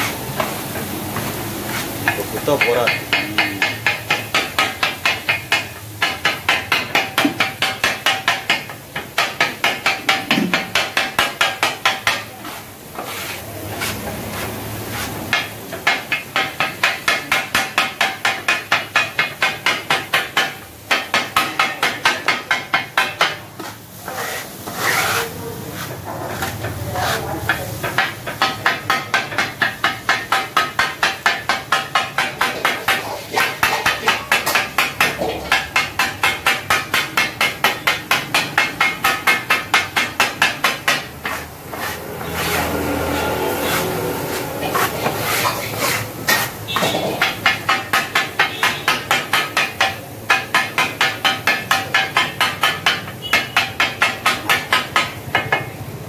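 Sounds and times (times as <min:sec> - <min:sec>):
blade scraping on griddle: 0:00.0 - 0:04.8, 0:09.3 - 0:16.7, 0:23.1 - 0:49.6
metal blade clanging on griddle: 0:15.0 - 0:55.8.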